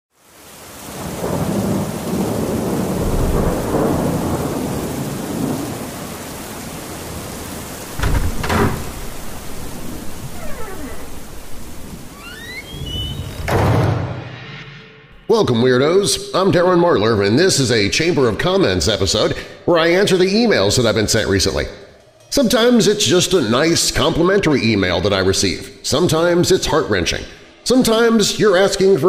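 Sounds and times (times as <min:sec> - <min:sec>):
steady rain: 0:00.1 - 0:13.5, 0:22.4 - 0:29.0
rolling thunder: 0:00.9 - 0:12.2
sharp thunderclap: 0:01.0 - 0:06.1, 0:07.8 - 0:10.4.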